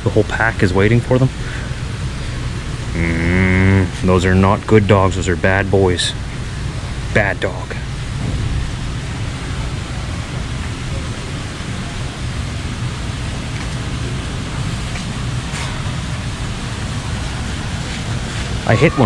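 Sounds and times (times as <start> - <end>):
store interior background roar: 0.0 - 19.0.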